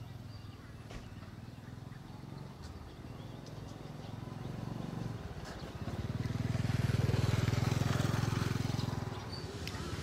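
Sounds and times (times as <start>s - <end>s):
small engine of passing vehicle: 0.0s - 10.0s.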